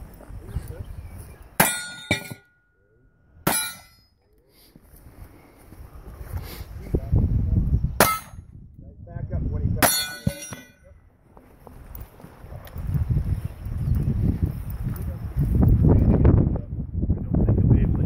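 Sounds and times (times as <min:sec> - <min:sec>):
wind rumble on microphone: 0:00.0 - 0:01.6, 0:05.0 - 0:10.0, 0:10.8 - 0:18.0
metallic clang of steel targets: 0:01.6 - 0:02.7, 0:03.4 - 0:04.1, 0:08.0 - 0:08.4, 0:09.8 - 0:10.9.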